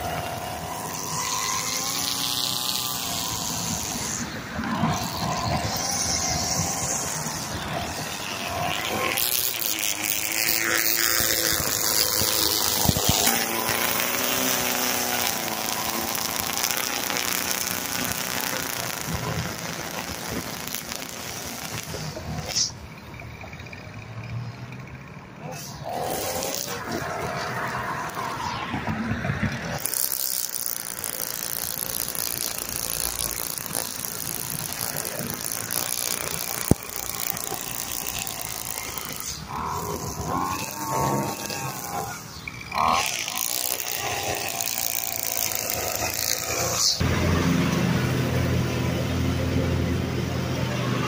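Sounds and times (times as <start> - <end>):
string trimmer cutting grass: 0.0 - 23.8, 25.4 - 51.0
mower engine running: 0.0 - 51.0.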